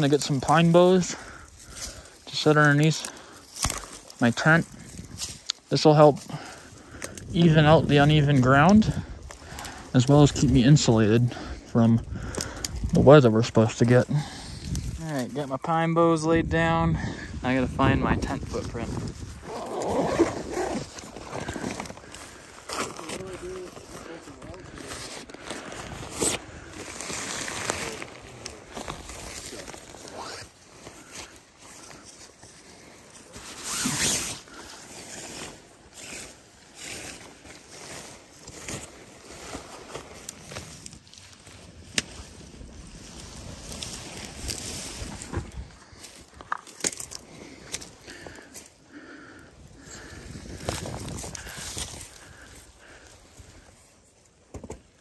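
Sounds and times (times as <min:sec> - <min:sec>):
tent poles clicking and knocking: 0:01.4 - 0:04.2, 0:45.1 - 0:48.4
nylon tent rustling: 0:12.7 - 0:16.8, 0:17.4 - 0:55.0
backpack rustling: 0:18.7 - 0:53.8.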